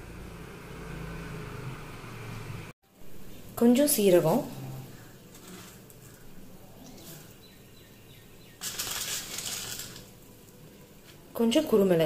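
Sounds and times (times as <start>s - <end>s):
dry spices rustling: 5.0s - 7.6s, 8.5s - 11.3s.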